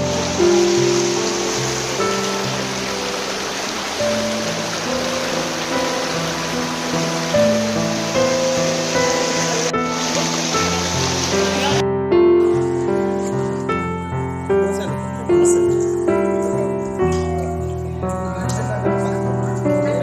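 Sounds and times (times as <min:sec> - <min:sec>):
fast-flowing floodwater rushing: 0:00.0 - 0:11.8
music of held notes: 0:00.0 - 0:20.0.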